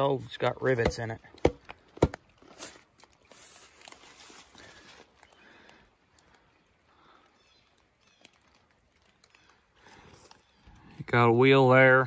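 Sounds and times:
footsteps crunching dry leaves: 2.4 - 5.4.

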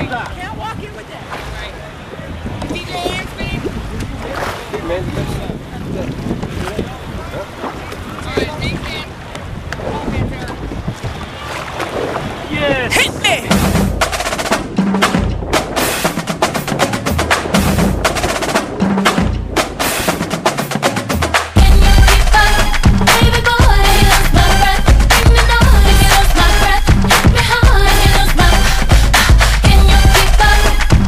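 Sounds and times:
water around boat: 0.0 - 31.0
wind: 0.0 - 31.0
music with strong drum beat: 12.9 - 31.0.

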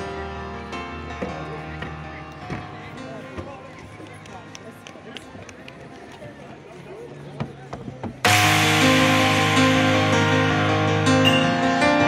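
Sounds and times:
distant murmur of voices: 0.0 - 8.3.

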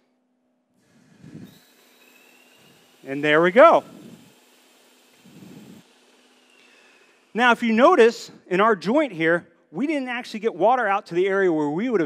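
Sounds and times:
electric pump whining: 0.8 - 7.6.

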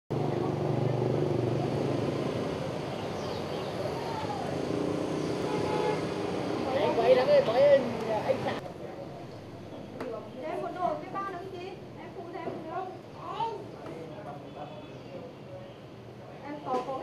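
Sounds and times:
vehicle engines running: 0.1 - 12.0
car horn tooting: 5.4 - 6.2.

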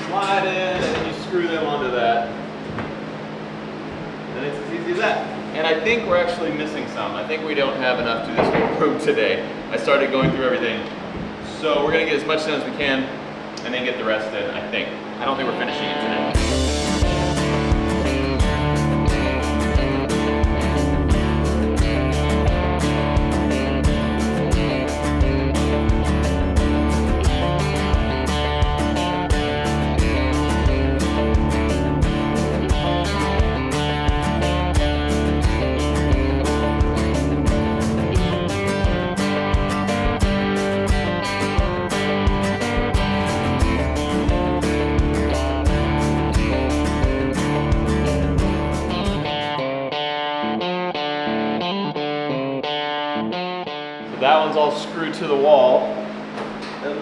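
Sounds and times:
guitar-led background music: 15.4 - 55.9.

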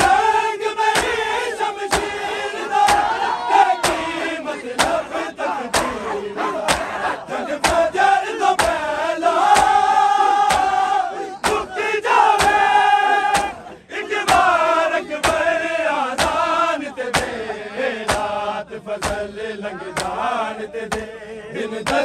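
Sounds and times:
chest slapping in unison: 0.0 - 15.6, 16.2 - 19.4, 20.0 - 20.2, 20.9 - 21.2
men chanting: 0.0 - 22.0.

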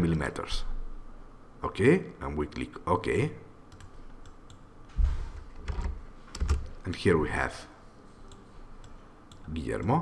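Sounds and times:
keyboard and mouse clicks: 5.5 - 6.8.

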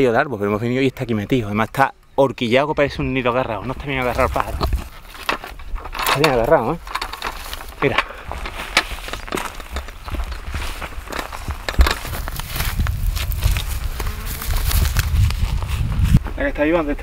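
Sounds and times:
footsteps crunching on straw: 3.8 - 5.5, 7.3 - 16.7
low microphone rumble: 8.2 - 17.0.

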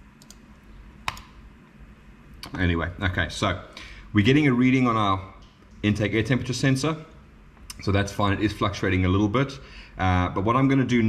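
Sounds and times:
laptop clicks: 1.0 - 1.4.

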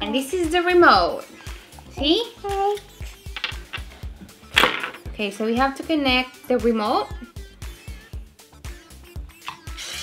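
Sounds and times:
electronic music with steady beat: 0.4 - 10.0.

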